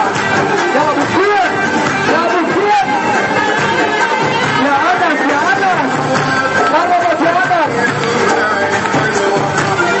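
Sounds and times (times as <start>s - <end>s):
crowd of men shouting and chanting: 0.0s - 10.0s
wedding music: 0.0s - 10.0s.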